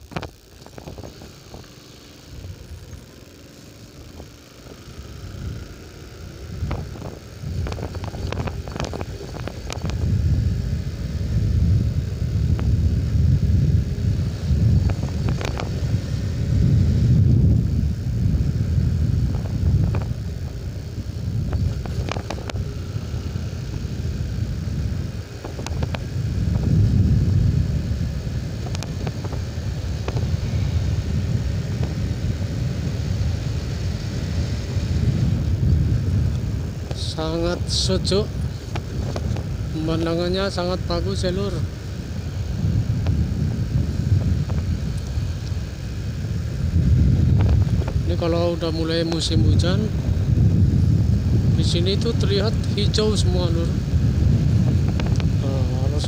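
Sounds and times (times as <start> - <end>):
motorcycle engine: 0.0 - 56.0
wind buffeting microphone: 4.0 - 56.0
sharp clicks: 6.6 - 10.0.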